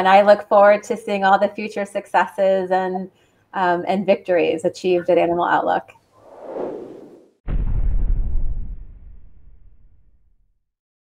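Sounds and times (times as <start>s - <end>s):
whoosh: 6.2s - 10.3s
deep bass hit: 7.5s - 10.4s.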